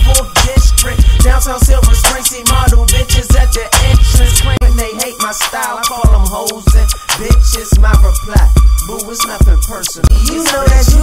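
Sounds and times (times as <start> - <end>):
rapping over a beat: 0.0 - 11.0.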